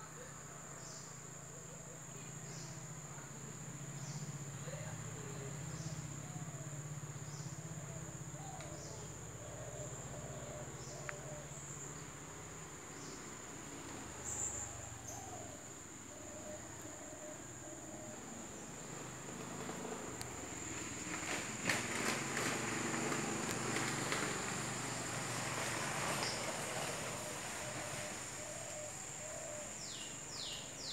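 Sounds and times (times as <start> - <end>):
insects droning: 0.0 - 30.9.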